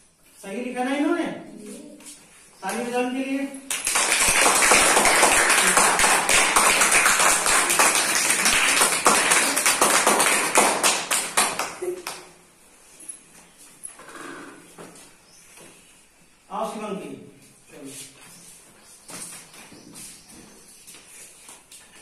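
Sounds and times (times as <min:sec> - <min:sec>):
children clapping: 0:03.7 - 0:12.3.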